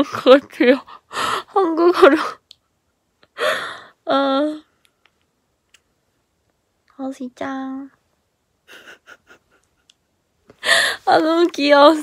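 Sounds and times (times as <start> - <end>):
young woman giggling: 8.6 - 10.1.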